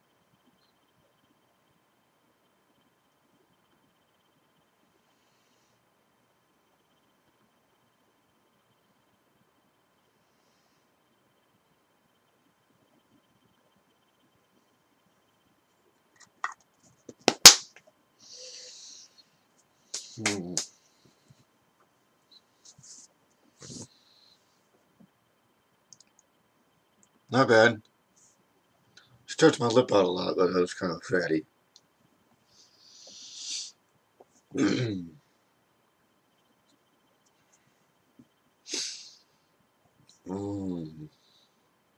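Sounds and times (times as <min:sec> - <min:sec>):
short hiss: 0:32.8 - 0:33.8, 0:38.7 - 0:39.2.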